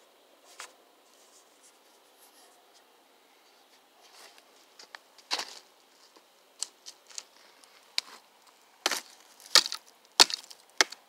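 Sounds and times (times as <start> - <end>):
campfire wood crackling: 4.3 - 11.0.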